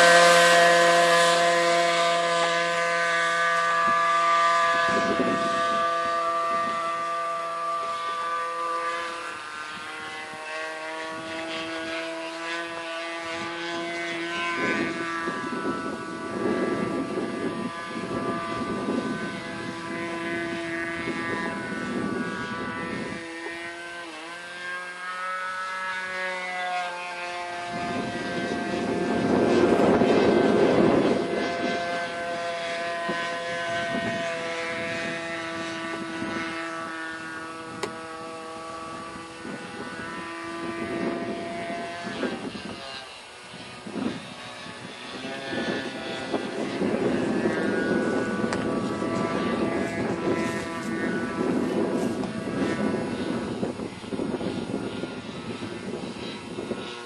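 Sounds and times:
model plane engine droning: 0:00.0 - 0:57.0.

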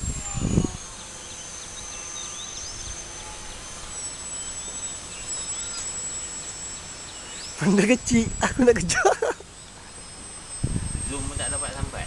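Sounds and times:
small chirps: 0:00.0 - 0:07.6
model plane motor whine: 0:00.0 - 0:12.0
open-air background noise: 0:00.0 - 0:12.0.

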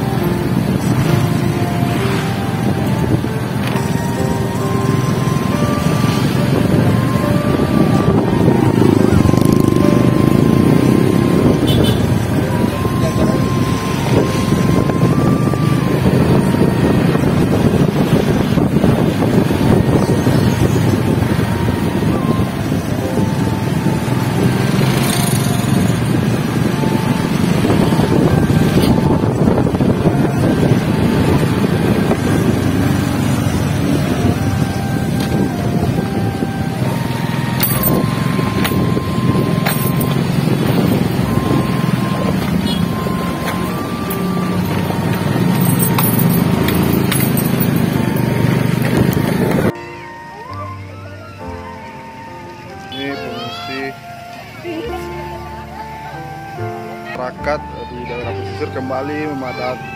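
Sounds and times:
motorcycle engines running: 0:00.0 - 0:49.8
road traffic: 0:00.0 - 0:59.9
wind rumble on microphone: 0:05.6 - 0:49.8.

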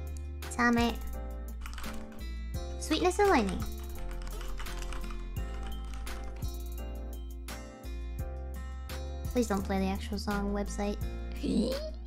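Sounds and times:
background music with bass and beats: 0:03.6 - 0:12.0.

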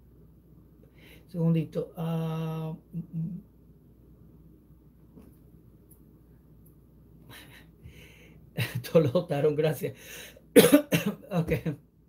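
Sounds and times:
man speaking a word: 0:01.3 - 0:03.4
man coughing: 0:10.6 - 0:11.8.

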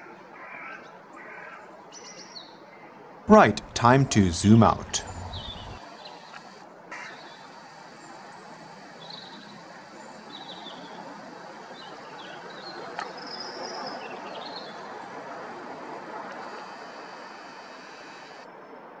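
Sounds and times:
distant traffic hum: 0:03.3 - 0:18.4
small birds chirping: 0:05.0 - 0:15.4.

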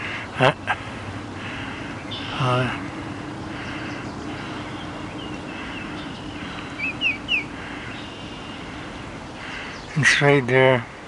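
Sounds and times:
low background hum: 0:00.0 - 0:11.0
bird chirping: 0:01.7 - 0:10.2.

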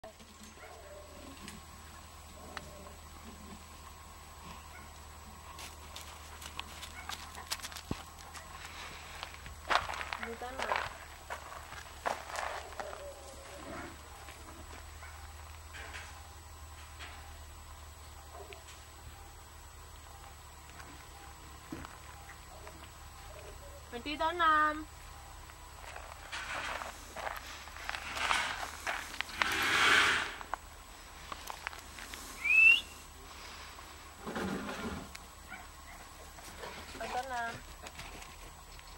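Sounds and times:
footsteps crunching on gravel: 0:05.4 - 0:15.7, 0:25.4 - 0:32.4
rising whistle-like call: 0:32.4 - 0:33.0.

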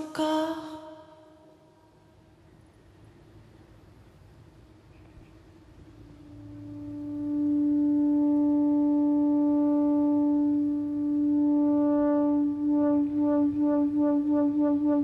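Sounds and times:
synthesizer sustained note: 0:04.6 - 0:15.0.

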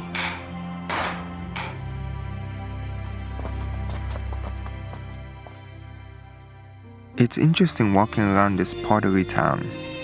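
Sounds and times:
sledgehammer striking steel on anvil: 0:00.0 - 0:01.9
background music: 0:00.0 - 0:10.0.

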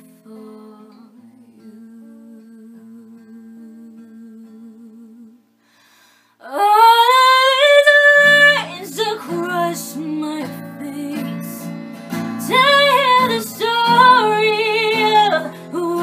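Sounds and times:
acoustic guitar strumming: 0:07.0 - 0:16.0.

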